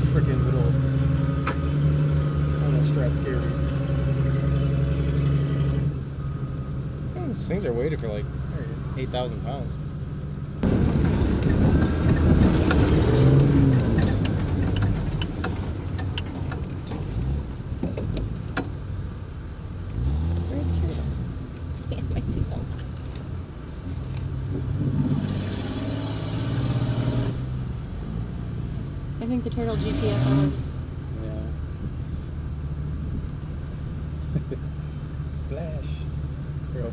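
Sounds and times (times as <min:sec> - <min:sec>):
truck engine revving: 0:00.0 - 0:19.0, 0:19.8 - 0:23.4, 0:24.0 - 0:31.6
body knocks and rattles: 0:13.7 - 0:17.2.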